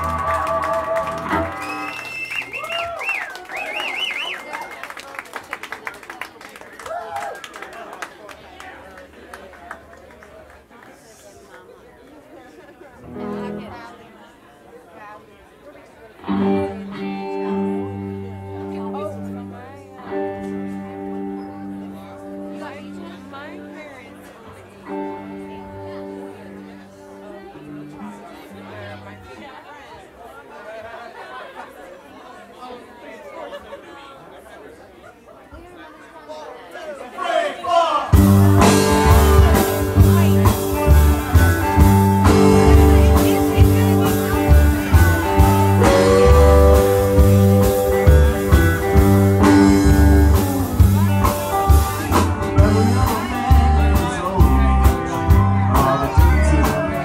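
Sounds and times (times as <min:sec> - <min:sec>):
crowd chatter: 0:00.0 - 0:57.0
soft held instrument notes: 0:38.2 - 0:56.9.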